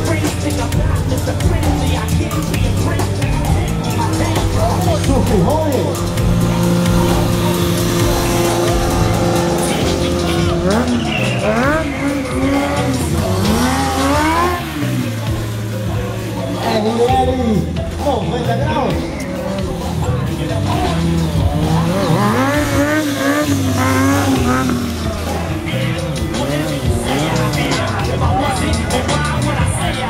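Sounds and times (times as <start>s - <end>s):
motorcycle engine revving: 0.0s - 18.0s, 18.9s - 30.0s.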